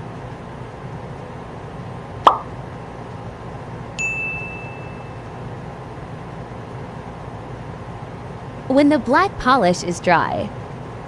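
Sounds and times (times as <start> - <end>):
steady background hiss: 0.0 - 11.0
plop with falling pitch: 2.2 - 2.5
bright ding ringing: 4.0 - 5.4.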